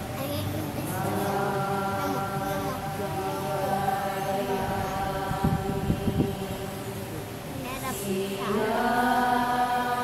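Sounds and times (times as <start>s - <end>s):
group chanting in unison: 0.8s - 7.1s, 7.8s - 10.0s.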